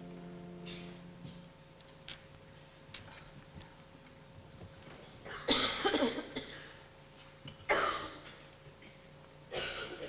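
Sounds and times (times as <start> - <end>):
person coughing: 5.3 - 6.8, 7.7 - 10.0.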